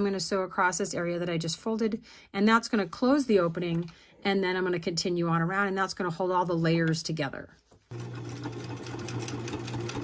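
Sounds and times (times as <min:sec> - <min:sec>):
sewing machine running: 0:07.9 - 0:10.0.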